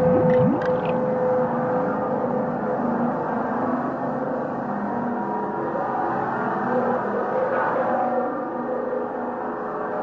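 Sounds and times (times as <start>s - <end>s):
steady held drone tone: 0.0s - 3.2s.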